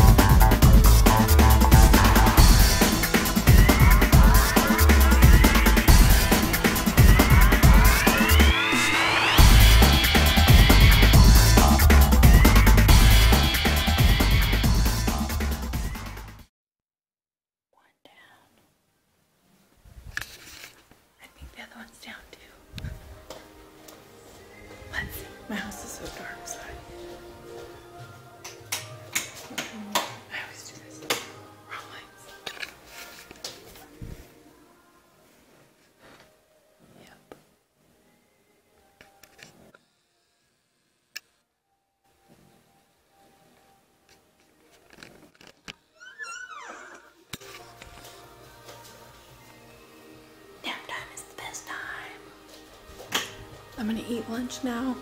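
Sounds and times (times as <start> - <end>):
woman whispering: 17.8 - 18.6, 21.2 - 22.6, 24.9 - 26.8, 29.5 - 31.1, 31.7 - 32.5, 36.9 - 37.3, 50.6 - 52.3
door hinge creaking: 46.0 - 47.2.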